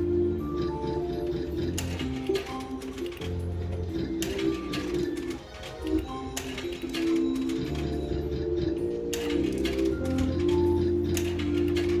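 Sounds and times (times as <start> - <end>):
slot machine electronic melody: 0.0 - 12.0
slot machine reels clicking: 0.0 - 12.0.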